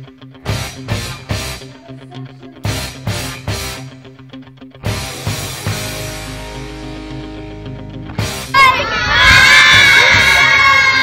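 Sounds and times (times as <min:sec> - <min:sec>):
children shouting and cheering: 0:08.4 - 0:11.0.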